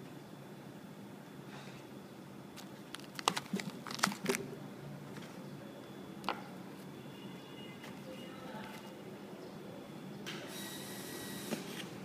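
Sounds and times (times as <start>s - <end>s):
foil bag crinkling: 2.6s - 4.5s.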